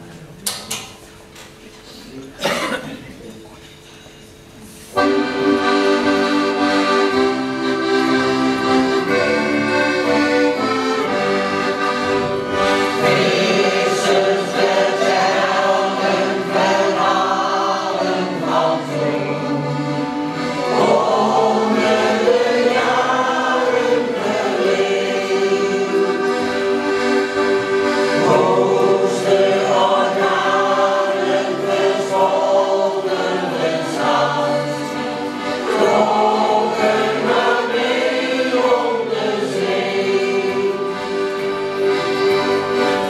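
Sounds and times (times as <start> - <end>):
accordions: 4.9 - 43.0
mixed choir singing: 8.8 - 43.0.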